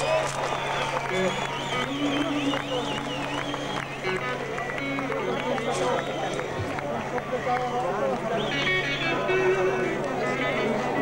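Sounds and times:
audience calling and talking: 0:00.0 - 0:11.0.

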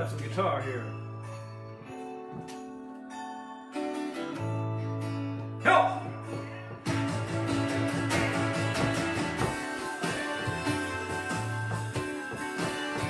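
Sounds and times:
electric guitar strummed chords: 0:04.1 - 0:13.0.

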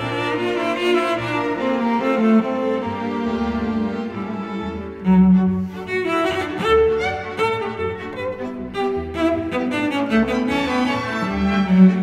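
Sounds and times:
cello and string orchestra: 0:00.0 - 0:12.0.

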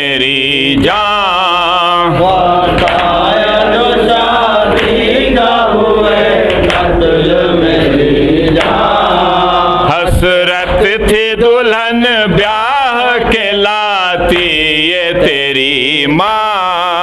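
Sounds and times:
men chanting in unison: 0:00.0 - 0:17.0
men reciting: 0:00.0 - 0:17.0.

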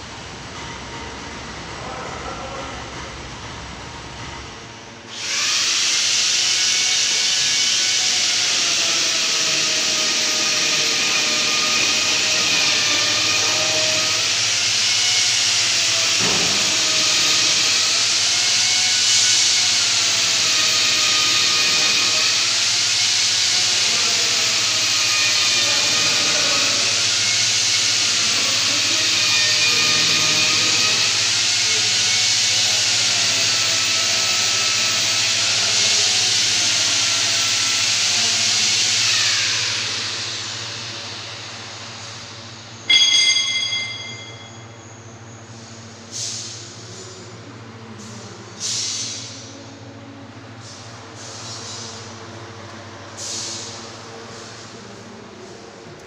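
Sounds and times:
wavering whine: 0:42.8 - 0:45.4
loud steady hiss: 0:53.1 - 0:54.6.

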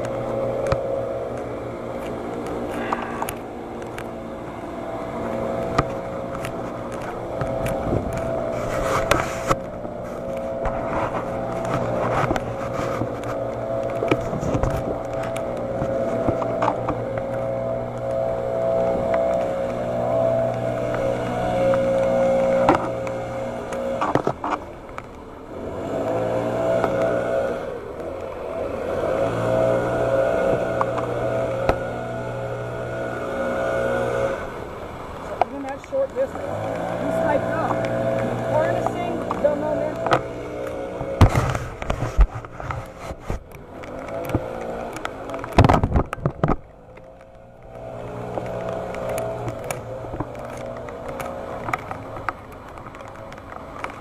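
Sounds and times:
vehicle engine running: 0:00.0 - 0:54.0.

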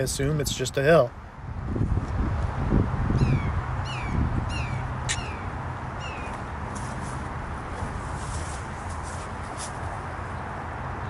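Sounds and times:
bird chirping: 0:03.2 - 0:06.5.

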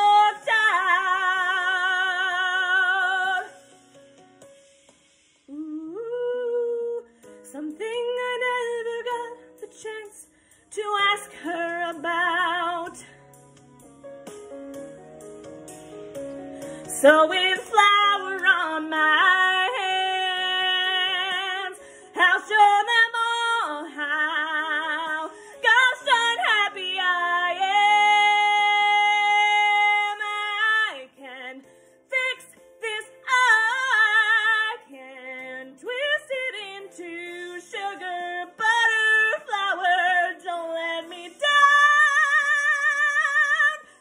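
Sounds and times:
woman singing with vibrato: 0:00.0 - 0:03.6, 0:05.5 - 0:13.1, 0:16.9 - 0:44.0
quiet instrumental accompaniment: 0:00.0 - 0:44.0.

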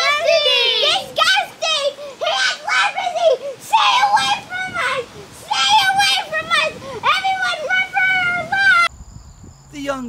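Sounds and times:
boys shouting in high voices: 0:00.0 - 0:08.9.

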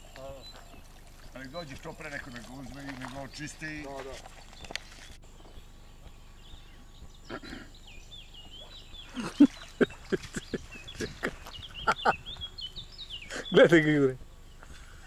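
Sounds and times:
bird singing: 0:00.0 - 0:15.0
people talking: 0:01.4 - 0:04.2, 0:13.3 - 0:14.2.

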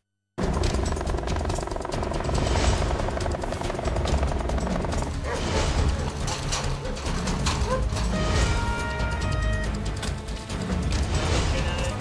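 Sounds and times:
news theme music with pulsing bass: 0:00.4 - 0:12.0.

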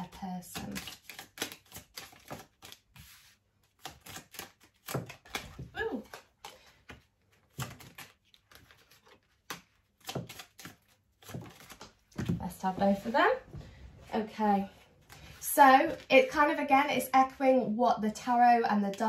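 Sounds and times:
cards being shuffled: 0:00.0 - 0:13.8.

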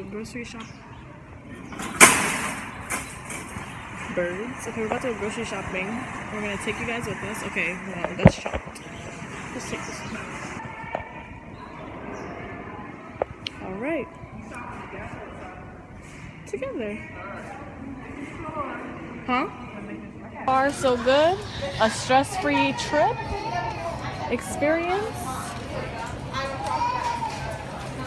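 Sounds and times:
busy supermarket background noise: 0:00.0 - 0:28.0
faint murmuring voices: 0:00.0 - 0:28.0.

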